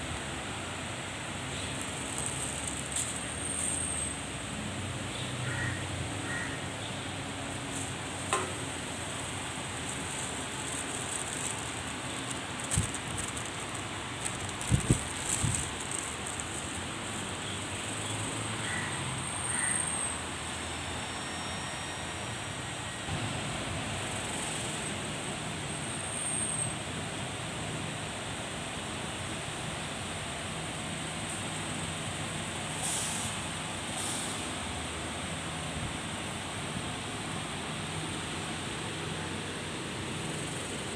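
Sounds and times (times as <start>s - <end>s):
hum of buses and traffic: 0.0s - 40.9s.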